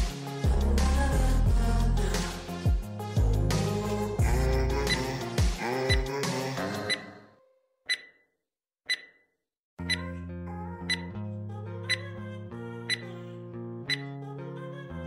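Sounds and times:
music track: 0.0s - 7.2s
background music: 0.0s - 7.4s
countdown timer beeps: 6.9s - 7.2s, 7.9s - 8.2s, 8.9s - 9.2s, 9.8s - 10.0s, 10.9s - 11.1s, 13.9s - 14.1s.

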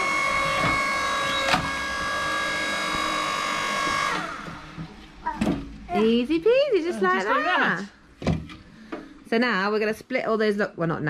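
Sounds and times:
log splitter motor whining: 0.0s - 6.2s.

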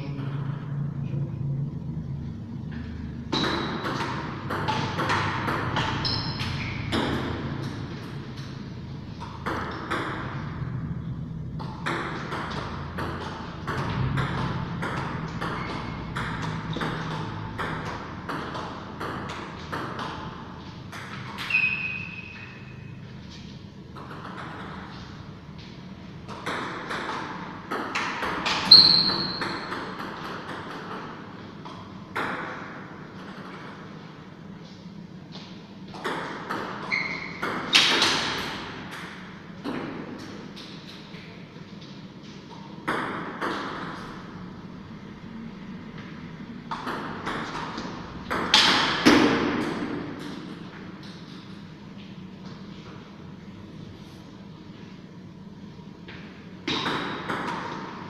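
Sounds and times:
high-pitched squeaks: 28.7s - 29.4s.

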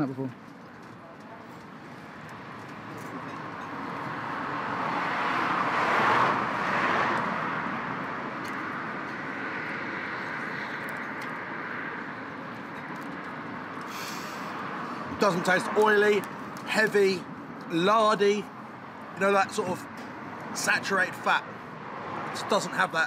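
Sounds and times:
road traffic passing: 0.0s - 23.0s.

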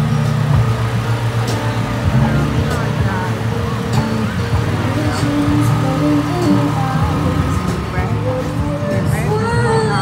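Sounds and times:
vehicle rumbling past: 0.0s - 10.0s
voices: 0.2s - 10.0s.

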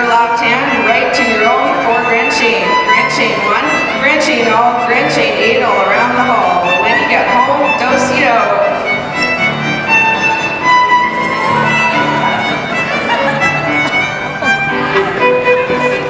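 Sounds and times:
voices: 0.0s - 8.8s
lively fiddle tune: 0.0s - 16.0s.

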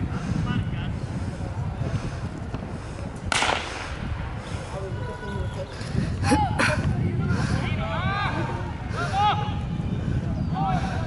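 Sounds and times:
starter's pistol crack: 3.3s - 3.9s.

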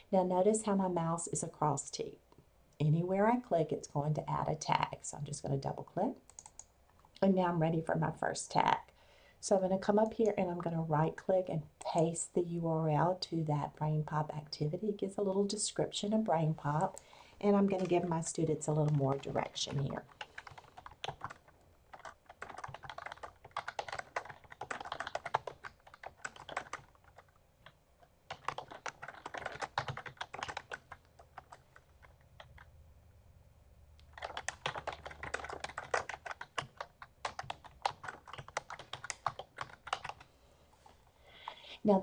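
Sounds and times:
typing on computer keyboard: 6.3s - 6.7s, 18.8s - 32.7s, 34.0s - 40.3s.

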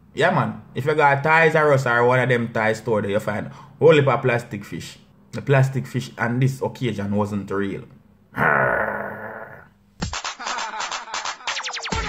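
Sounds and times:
man grunting: 8.4s - 9.7s.

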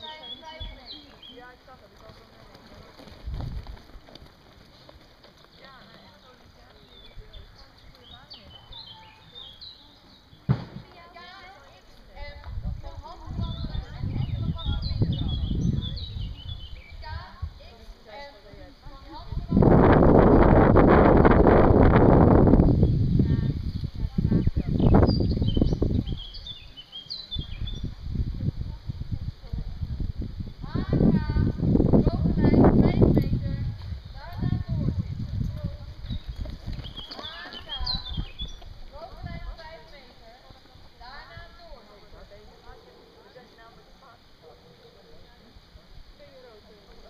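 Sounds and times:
wind buffeting microphone: 0.0s - 9.7s, 10.4s - 42.8s
birds chirping: 0.0s - 12.4s, 13.0s - 18.3s, 22.7s - 28.0s, 32.9s - 45.6s
sharp knock: 10.5s - 11.0s.

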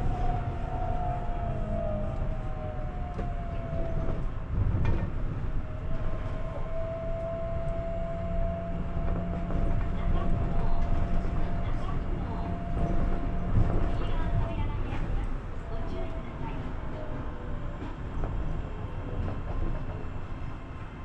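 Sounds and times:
tram car rumble: 0.0s - 21.0s.

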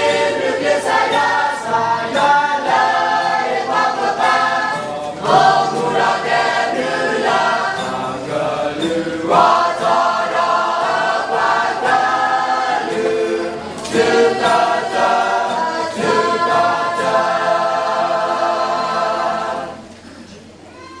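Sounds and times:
choir singing: 0.0s - 20.1s.

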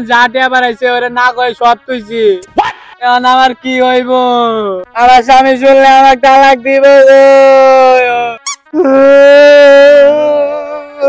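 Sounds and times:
person wailing: 7.7s - 11.0s.

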